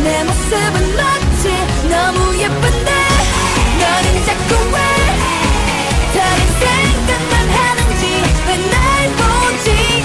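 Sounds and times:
electronic dance beat and bass: 0.0s - 10.0s
women singing pop song: 0.0s - 10.0s.

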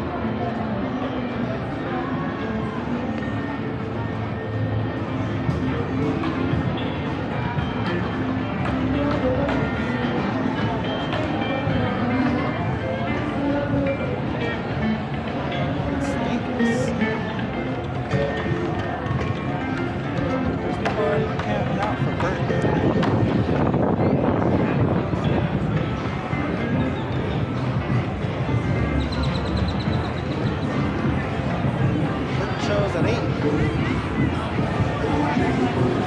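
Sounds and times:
crowd chatter: 0.0s - 36.0s
music from bars: 0.0s - 36.0s
steady low street hum: 0.0s - 36.0s.

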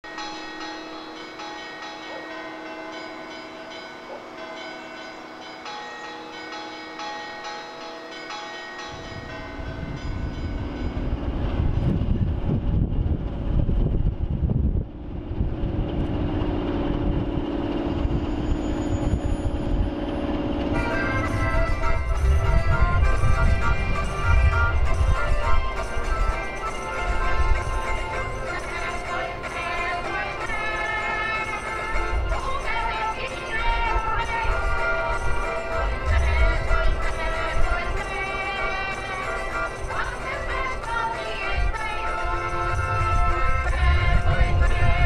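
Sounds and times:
bell-like ringing tones: 0.1s - 12.0s, 16.4s - 45.0s
locomotive rumbling: 7.8s - 45.0s
steady drone: 8.8s - 45.0s.

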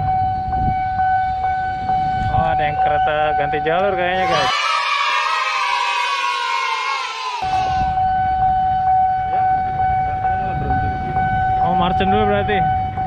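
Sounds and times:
level crossing alarm tone: 0.0s - 13.0s
low traffic rumble: 0.0s - 13.0s
many tones falling in pitch: 0.0s - 13.0s.

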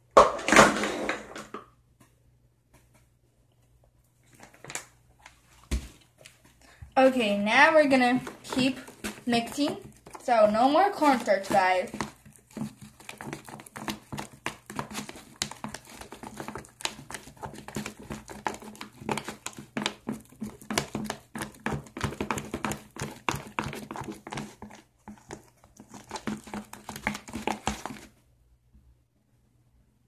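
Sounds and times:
spatula stirring sticky slime: 5.2s - 28.2s.

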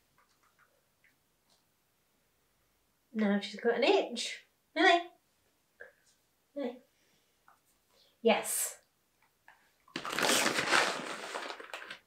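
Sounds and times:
treat pouch rustling: 9.9s - 12.0s.

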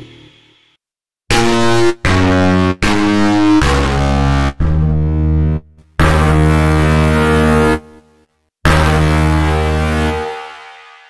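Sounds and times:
synthesizer low held note: 8.7s - 11.0s.

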